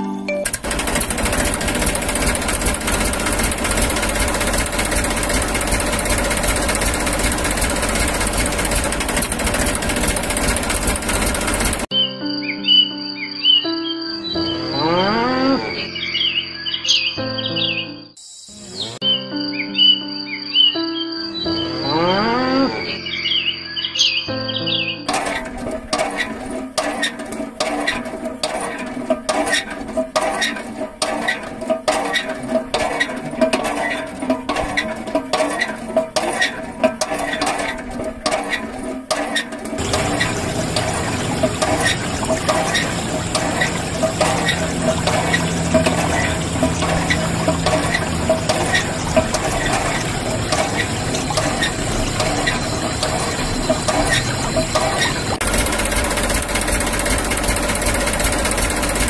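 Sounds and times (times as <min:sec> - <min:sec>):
dense mechanical rattle: 0:00.4 - 0:11.9, 0:25.1 - 0:59.0
chirps and rising whistles: 0:11.9 - 0:14.6, 0:15.9 - 0:22.0, 0:23.0 - 0:25.0.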